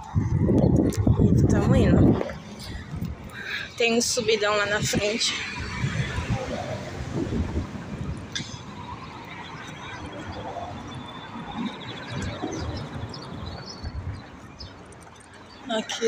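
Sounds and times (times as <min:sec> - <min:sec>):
street traffic: 0:00.0 - 0:16.0
wind buffeting microphone: 0:00.0 - 0:16.0.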